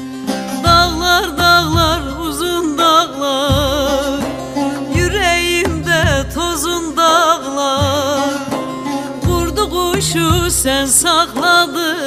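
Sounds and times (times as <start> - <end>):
plucked string instruments: 0.0 - 12.0.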